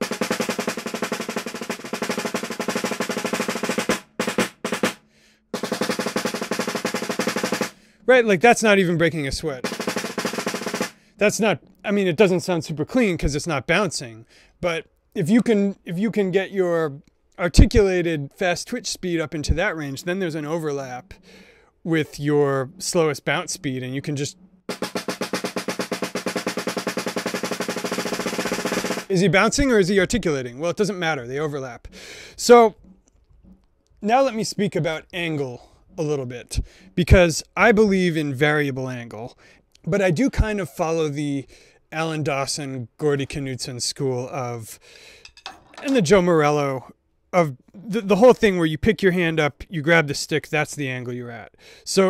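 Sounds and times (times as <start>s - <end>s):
snare drum fast strokes: 0.0s - 7.8s, 9.6s - 11.1s, 24.7s - 29.1s.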